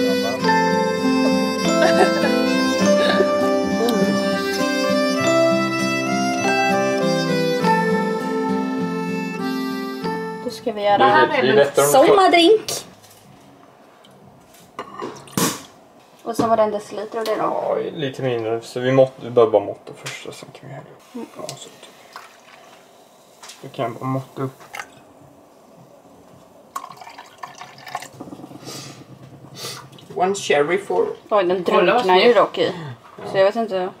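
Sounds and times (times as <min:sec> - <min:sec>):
drink fizzing: 0:21.0 - 0:25.1, 0:26.7 - 0:30.4
splashing drips: 0:22.0 - 0:22.8, 0:24.6 - 0:25.0, 0:26.7 - 0:28.4
drink pouring into glass: 0:26.7 - 0:30.1.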